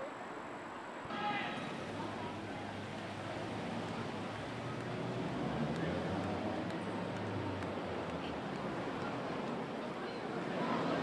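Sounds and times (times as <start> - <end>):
faint indistinct voices: 1.1 - 11.0.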